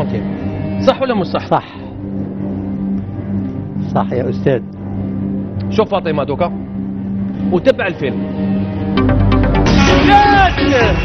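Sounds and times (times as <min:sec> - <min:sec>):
low droning suspense music: 0:00.0 - 0:11.0.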